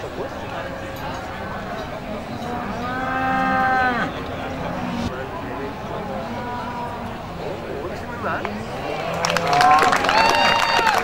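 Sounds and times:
cow mooing: 0:02.2 - 0:05.1.

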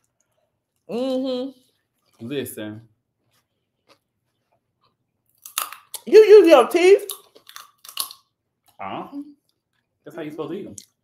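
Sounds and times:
crunchy food being chewed: 0:03.2 - 0:06.1, 0:07.0 - 0:08.8.

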